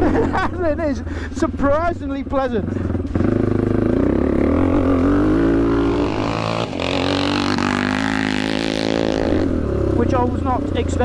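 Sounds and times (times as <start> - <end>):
motorcycle engine pulling: 2.3 - 11.0.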